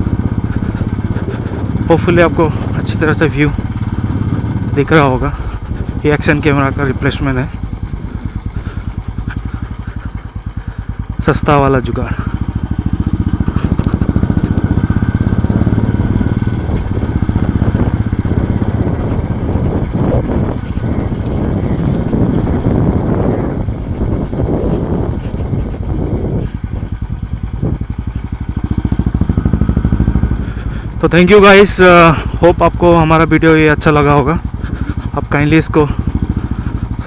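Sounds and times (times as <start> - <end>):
motorcycle engine running: 0.0 - 37.0.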